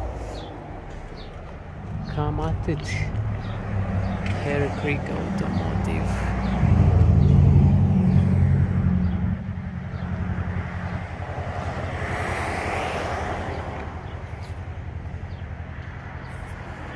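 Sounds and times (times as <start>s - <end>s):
vehicle rumble: 0.0s - 16.9s.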